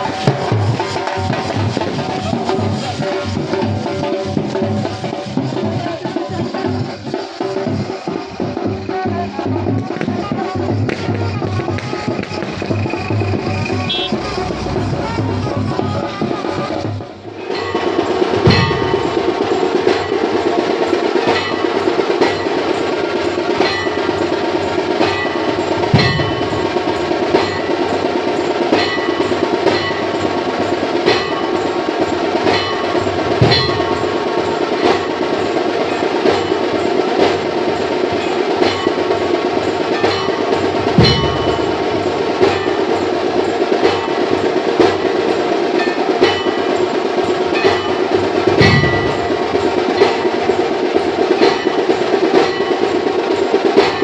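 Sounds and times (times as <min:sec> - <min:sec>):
bells and small cymbals: 0:00.0 - 0:54.0
deep drum or gong stroke: 0:40.6 - 0:43.0, 0:48.4 - 0:50.3.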